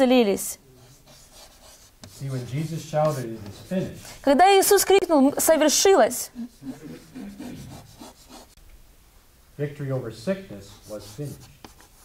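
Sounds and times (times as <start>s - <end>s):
chalk scratching on a blackboard: 0.8s - 4.2s, 6.4s - 8.6s, 10.6s - 12.0s
man speaking: 2.2s - 4.1s, 9.6s - 11.6s.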